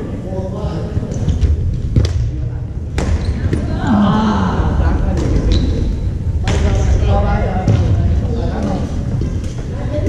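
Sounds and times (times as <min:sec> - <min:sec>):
steady hall hum: 0:00.0 - 0:10.0.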